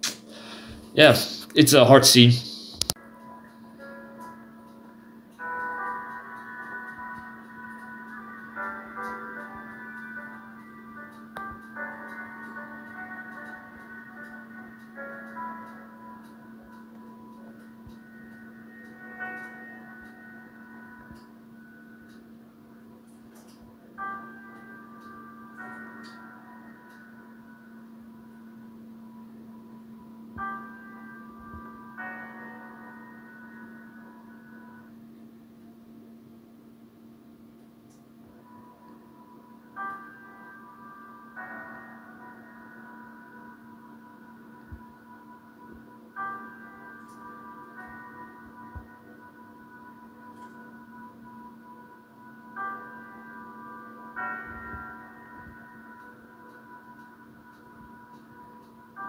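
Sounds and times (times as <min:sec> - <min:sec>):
slow film score through speakers: 0:00.0 - 0:59.0
steady low hum: 0:00.0 - 0:59.0.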